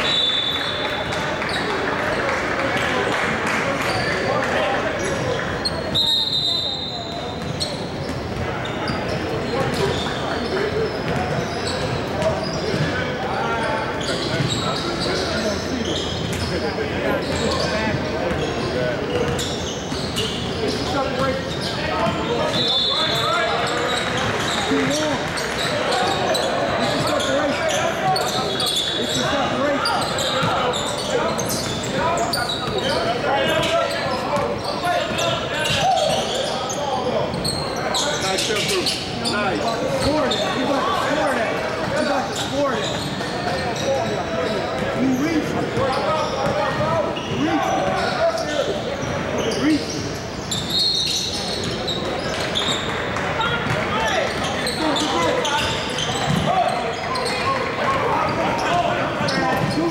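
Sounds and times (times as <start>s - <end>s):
indistinct shouts and chatter: 0.0s - 59.9s.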